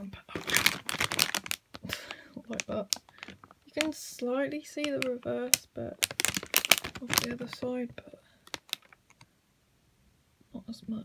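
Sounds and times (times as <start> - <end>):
plastic clicks and crackles: 0.3 - 9.3.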